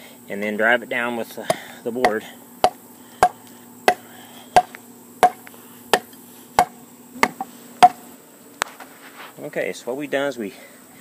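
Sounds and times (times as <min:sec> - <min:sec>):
hammer striking wooden board: 0:04.6 - 0:05.4, 0:06.0 - 0:08.0.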